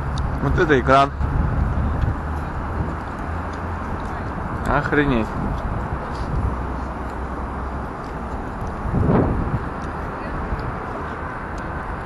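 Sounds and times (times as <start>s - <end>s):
passing pedestrians: 0.0s - 12.0s
traffic: 0.0s - 12.0s.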